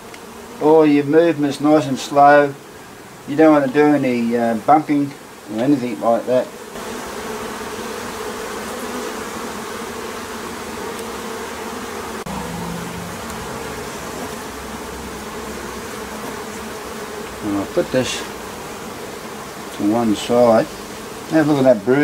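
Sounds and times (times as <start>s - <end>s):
honeybees buzzing: 0.0s - 22.0s.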